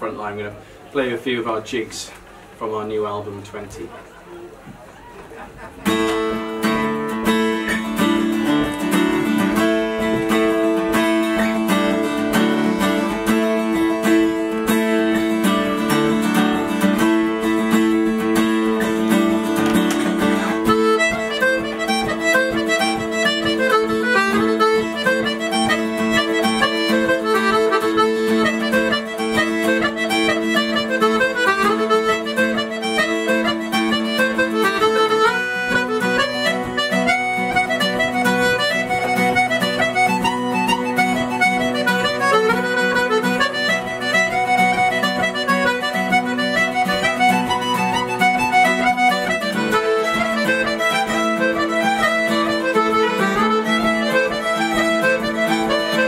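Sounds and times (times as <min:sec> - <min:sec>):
plucked guitar: 0:04.8 - 0:56.0
accordion chords: 0:05.8 - 0:56.0
fast melody run: 0:08.9 - 0:56.0.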